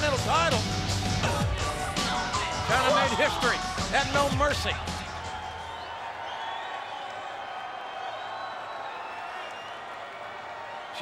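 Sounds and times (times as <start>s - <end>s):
arena crowd cheering: 0.0s - 11.0s
crowd whistling: 2.1s - 11.0s.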